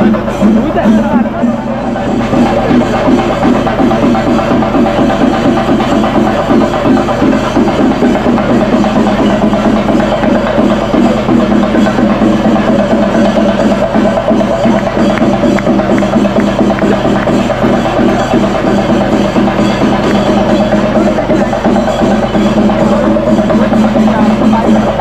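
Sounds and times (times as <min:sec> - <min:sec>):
procession music with fast drumming: 0:00.0 - 0:25.0.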